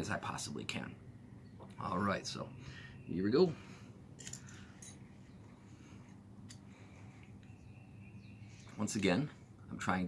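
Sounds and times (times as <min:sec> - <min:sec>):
metallic clicks and scrapes: 0:04.2 - 0:05.0.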